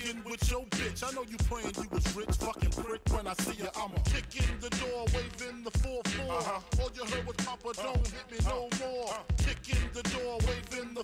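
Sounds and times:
rapping over a beat: 0.0 - 11.0
heavy kick drums: 0.4 - 7.1, 8.0 - 10.7.

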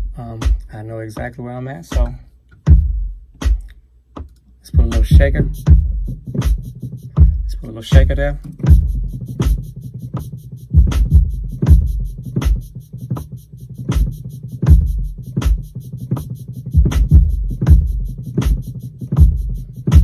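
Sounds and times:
drum machine loop: 0.0 - 20.0.

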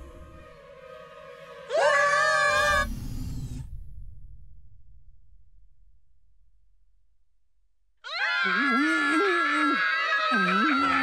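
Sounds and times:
cartoon boys screaming: 8.0 - 11.0.

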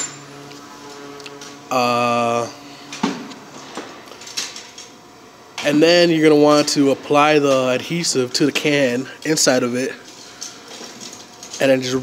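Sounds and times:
workshop background noise: 0.0 - 12.0.

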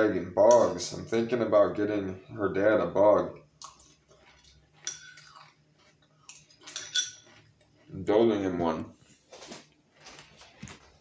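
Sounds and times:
spoon clinking against china bowl: 4.8 - 5.4, 6.3 - 7.4.

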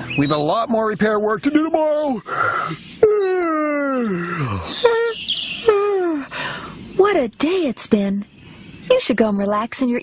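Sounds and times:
cartoon voices groaning: 2.2 - 6.3
short vocal calls: 2.2 - 6.8.

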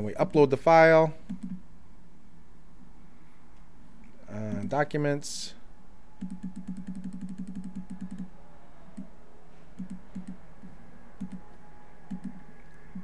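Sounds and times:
computer mouse clicking: 6.2 - 8.3, 9.8 - 11.5, 12.1 - 13.0.

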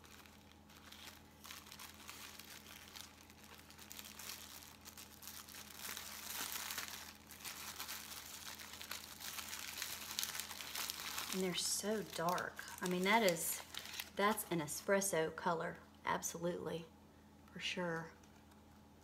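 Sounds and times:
cellophane bag crinkling: 0.0 - 14.9
faint electrical hum: 0.0 - 19.0.

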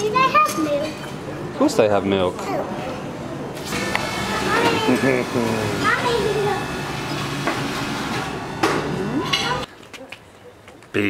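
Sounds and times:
tableware clatter: 0.4 - 1.2, 8.6 - 9.7.

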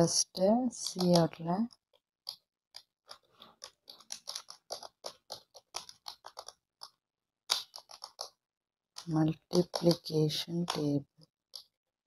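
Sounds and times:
keyboard typing: 2.3 - 8.4, 9.0 - 11.8.

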